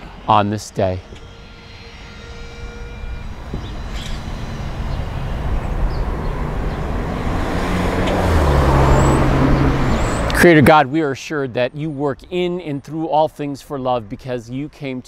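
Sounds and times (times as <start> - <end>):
vehicle engine passing by: 3.4 - 10.5.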